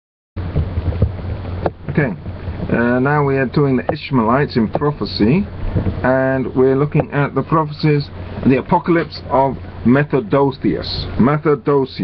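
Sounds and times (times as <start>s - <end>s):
steady low rumble: 0.4s - 12.0s
soft knocks: 0.5s - 2.7s.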